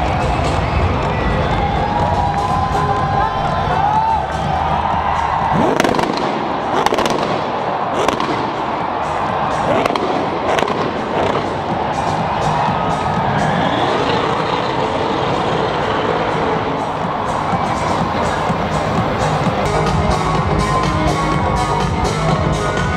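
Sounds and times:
background music: 0.0s - 22.9s
crowd noise: 0.0s - 22.9s
exhaust bangs: 4.6s - 20.8s
car engine revving: 5.4s - 21.8s.

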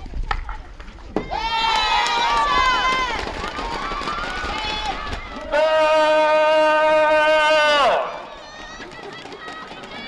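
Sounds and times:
women shouting and cheering: 1.2s - 10.0s.

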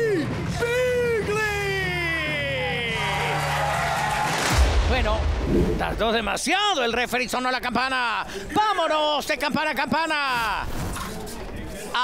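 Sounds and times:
arena music with low beat: 0.0s - 6.6s
deep boom sound effect: 4.3s - 7.0s.

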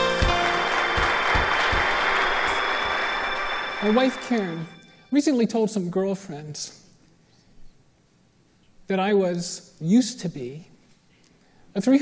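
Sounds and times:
audience applause: 0.0s - 4.8s
intro music: 0.0s - 5.2s.

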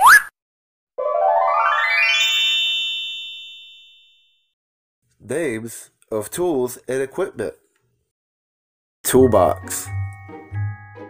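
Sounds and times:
synthesized chime jingle: 1.0s - 4.4s.

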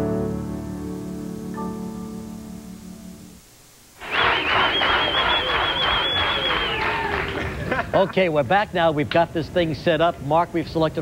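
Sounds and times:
shrill whistle: 4.0s - 7.2s
audience cheering and clapping: 4.0s - 8.0s.

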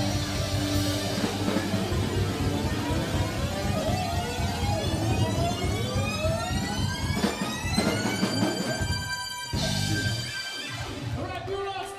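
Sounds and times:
bass: 0.0s - 11.4s
drums: 0.0s - 11.9s
live rock band: 0.0s - 11.9s.

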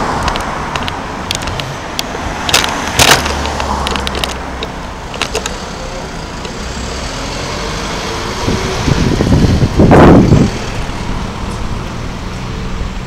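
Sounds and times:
city street traffic: 0.0s - 13.0s
vehicle passing close by: 0.0s - 13.0s.

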